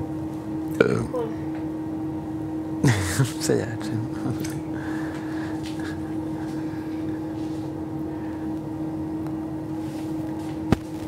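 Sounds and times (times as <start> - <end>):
steady background hum: 0.0 - 11.0
person short exclamation: 0.8 - 1.4.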